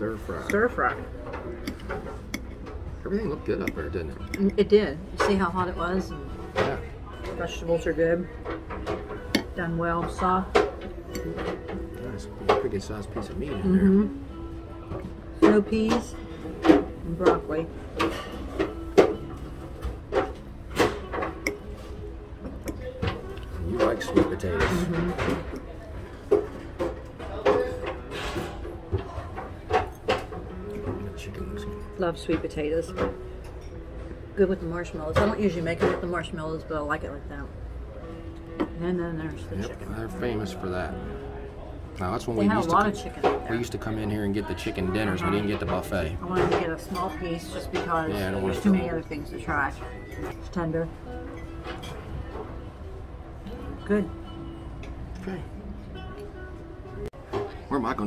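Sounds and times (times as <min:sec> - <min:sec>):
faint background voices: 0:21.3 - 0:57.7.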